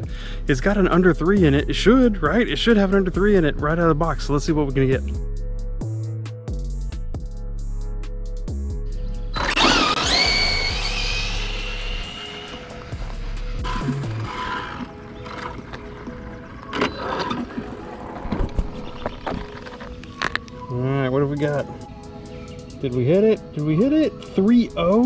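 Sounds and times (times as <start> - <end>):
background music: 0.0 - 25.0
electric motor whining up in pitch: 9.4 - 15.5.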